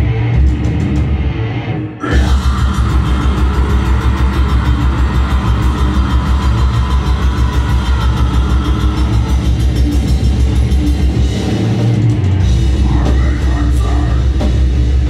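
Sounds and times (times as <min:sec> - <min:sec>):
metal band playing live: 0:00.0 - 0:15.0.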